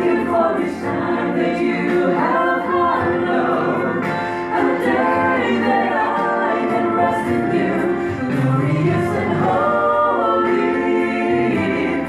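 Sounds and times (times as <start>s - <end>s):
vocal group singing in harmony: 0.0s - 12.0s.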